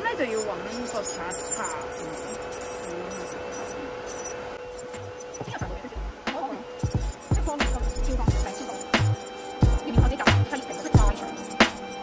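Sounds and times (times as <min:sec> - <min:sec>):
dust collector fan rushing: 0:00.0 - 0:12.0
electric nail drill whining: 0:00.0 - 0:12.0.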